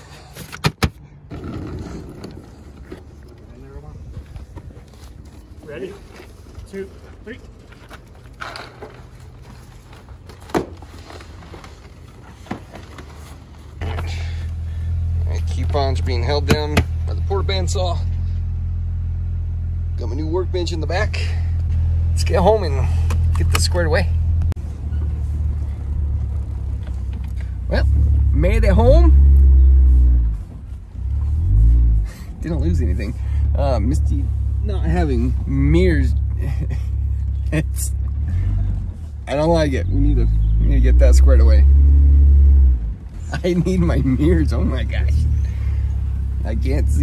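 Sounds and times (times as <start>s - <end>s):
road rumble: 0.0s - 47.0s
heavy engine driving: 1.2s - 47.0s.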